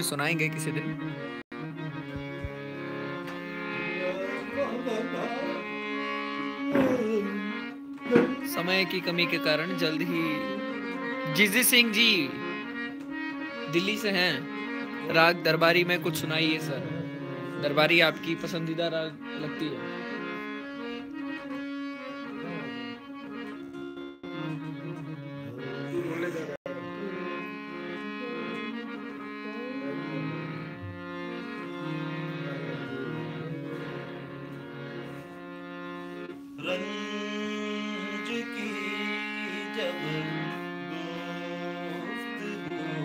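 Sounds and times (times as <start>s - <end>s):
harmonium melody: 0.0s - 43.0s
held drone note: 16.5s - 18.8s.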